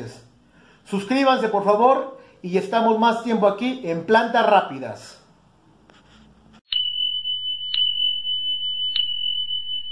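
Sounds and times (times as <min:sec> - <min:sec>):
steady high-pitched electronic tone: 0:06.7 - 0:09.9.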